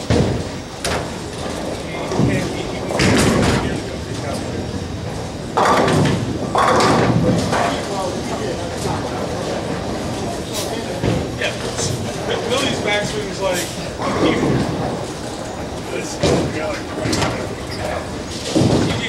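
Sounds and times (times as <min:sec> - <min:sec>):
bowling ball rolling: 0:00.0 - 0:10.3
rumble of balls and pinsetters: 0:00.0 - 0:19.0.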